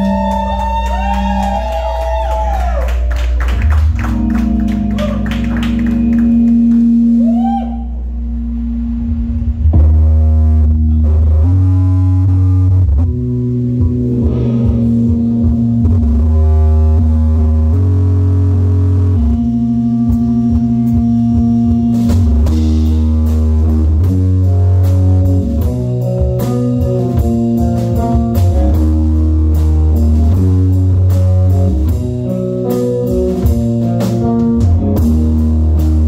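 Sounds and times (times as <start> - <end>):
held bass notes: 0.0 - 36.0
electric guitar sliding notes: 3.6 - 36.0
drum hits: 13.8 - 16.4.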